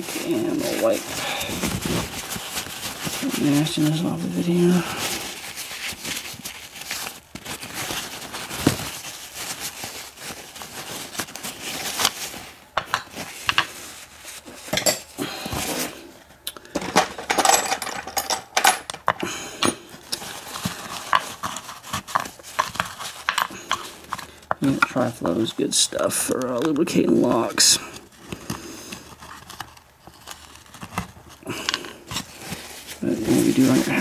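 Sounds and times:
paper towel crinkling: 0.0 - 16.3, 19.2 - 34.0.

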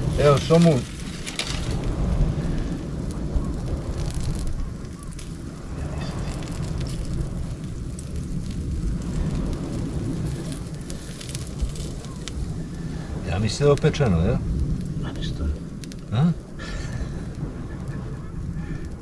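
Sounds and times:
embers crackling: 0.0 - 19.0
steady low rumble: 0.0 - 19.0.

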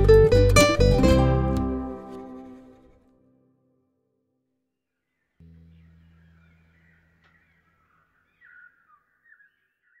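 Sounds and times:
short bird-like calls: 5.1 - 10.0.

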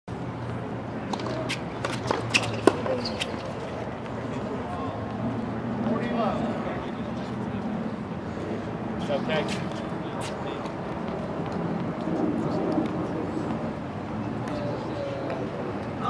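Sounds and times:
murmur of voices: 2.7 - 16.0.

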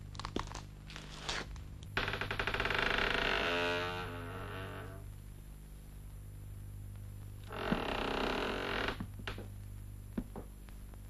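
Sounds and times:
steady low hum: 0.0 - 11.0
wooden door creaking: 2.0 - 5.1, 7.4 - 9.5.

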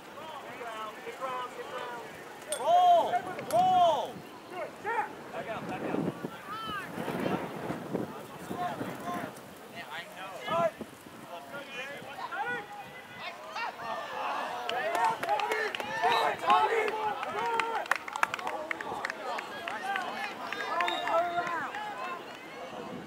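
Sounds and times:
distant shouts and calls: 11.6 - 23.0.

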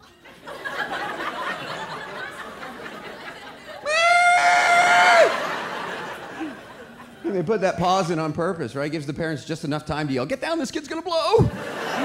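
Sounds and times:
man imitating child wailing: 3.9 - 5.3.

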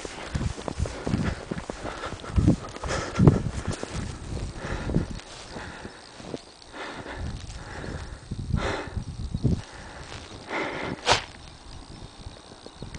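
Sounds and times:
footsteps in deep snow: 0.0 - 8.1, 9.6 - 11.4.

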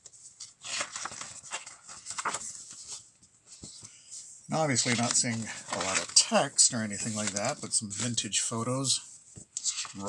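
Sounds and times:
glossy pages turning: 0.4 - 3.1, 4.7 - 8.2.

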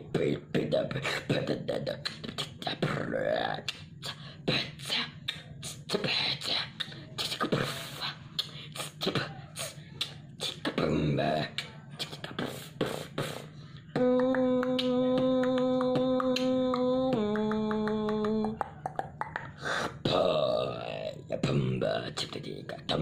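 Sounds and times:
buzzing held vocal tone: 0.0 - 23.0
vocal beatboxing clicks and beats: 0.1 - 23.0.

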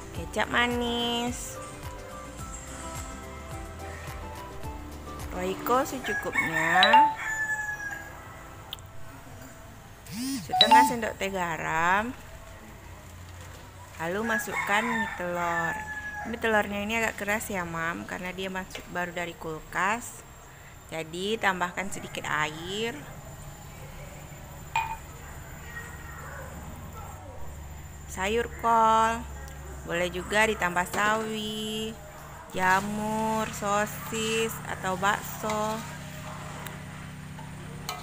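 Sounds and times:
rooster crowing: 6.0 - 8.5, 14.2 - 16.5
drinking glass clinking down: 24.8 - 25.1.

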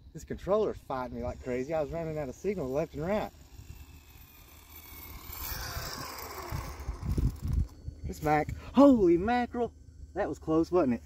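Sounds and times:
electric motor whine: 0.6 - 11.0
low rumbles: 3.3 - 11.0.

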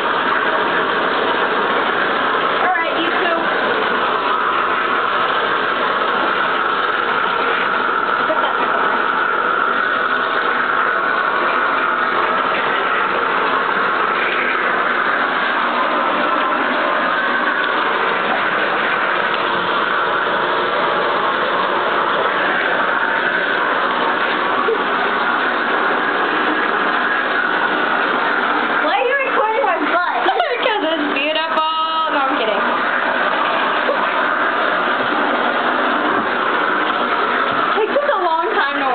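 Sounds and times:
water running from bathtub faucet: 0.0 - 38.9.

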